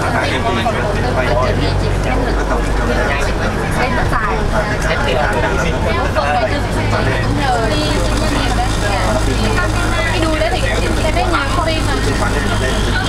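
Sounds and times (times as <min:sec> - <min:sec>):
bus rumble from inside: 0:00.0 - 0:13.0
passengers chattering: 0:00.0 - 0:13.0.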